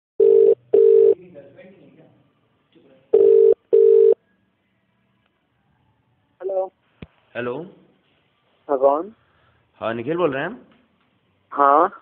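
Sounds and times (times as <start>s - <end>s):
telephone ringback tone: 0.2s - 1.2s, 3.2s - 4.2s.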